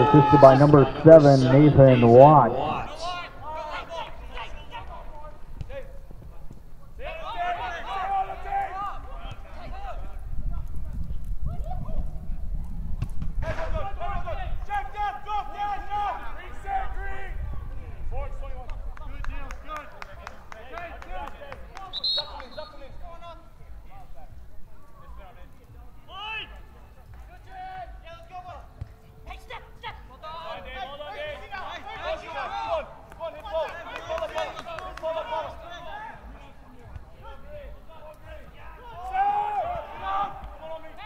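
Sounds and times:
voices shouting outdoors: 0:00.0 - 0:06.2, 0:06.9 - 0:10.2, 0:13.5 - 0:18.1, 0:19.5 - 0:41.0.

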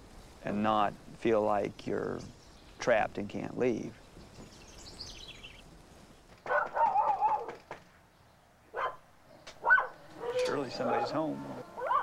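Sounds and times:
dog barking and howling: 0:06.5 - 0:07.6, 0:08.7 - 0:09.0, 0:09.6 - 0:12.0.

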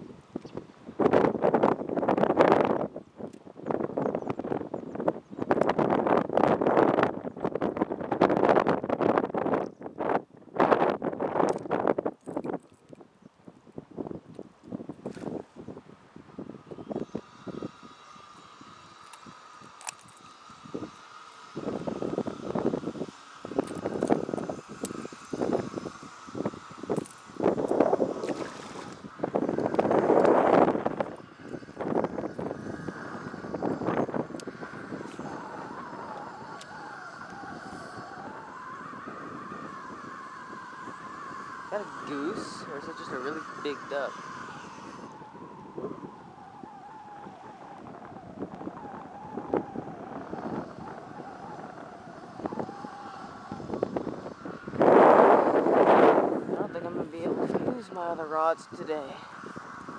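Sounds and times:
faint steady drone: 0:00.0 - 0:59.9
wind buffeting microphone: 0:00.0 - 0:59.9.

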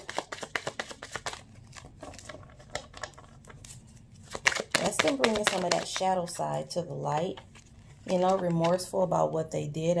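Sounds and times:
cards being shuffled: 0:00.0 - 0:06.1, 0:07.3 - 0:08.9.

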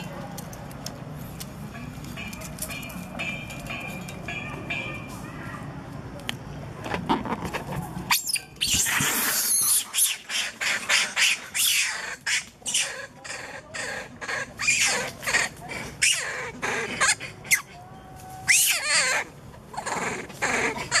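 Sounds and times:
monkeys squealing and screeching: 0:08.1 - 0:21.0.

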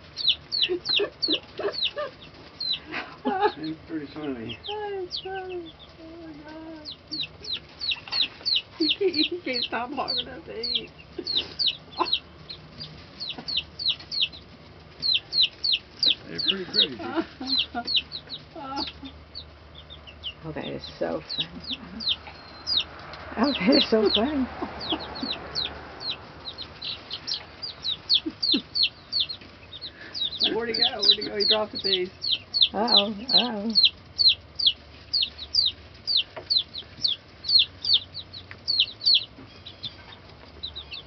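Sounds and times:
baby chicks peeping: 0:00.0 - 0:41.0.

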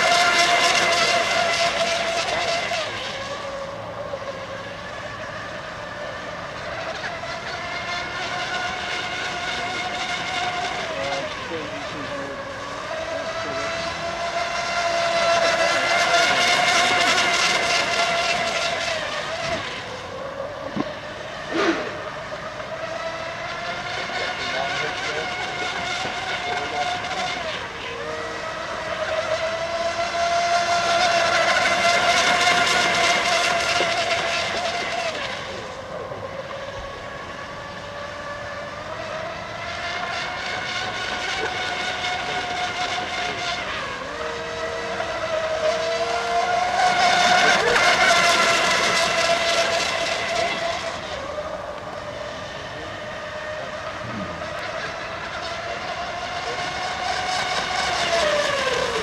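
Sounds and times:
electric model boat whine: 0:00.0 - 0:59.0.

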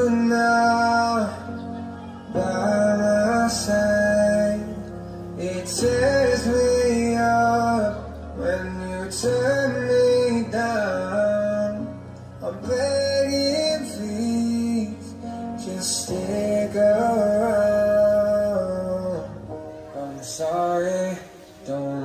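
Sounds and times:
slow song with guitar: 0:00.0 - 0:22.0.

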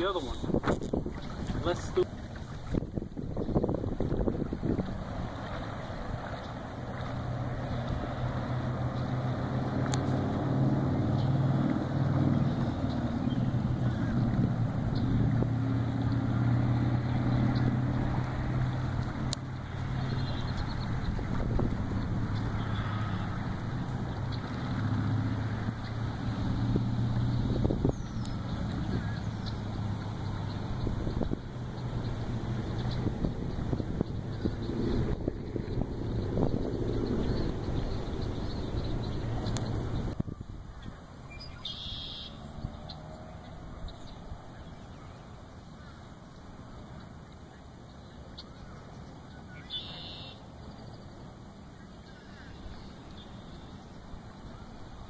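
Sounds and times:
wind buffeting microphone: 0:00.0 - 0:41.6.

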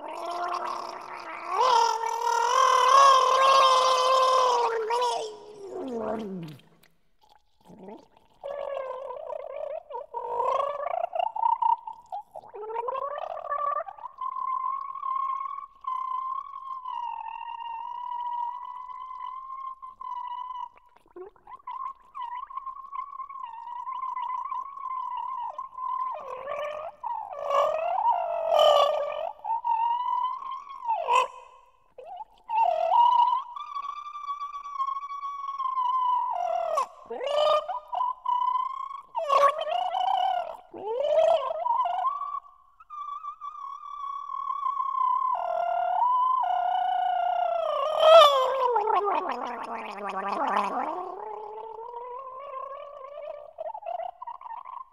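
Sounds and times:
person gargling a pitch: 0:00.0 - 0:54.9.

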